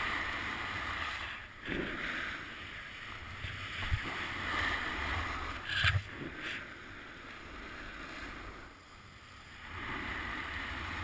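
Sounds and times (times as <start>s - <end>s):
wind rushing over microphone: 0.0s - 6.7s.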